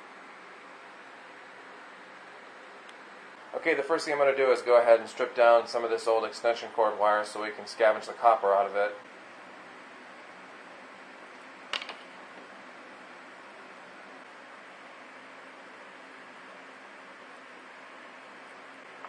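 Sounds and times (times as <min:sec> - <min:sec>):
steady low hiss: 0:00.0 - 0:19.0
wire stripper click: 0:11.7 - 0:12.1.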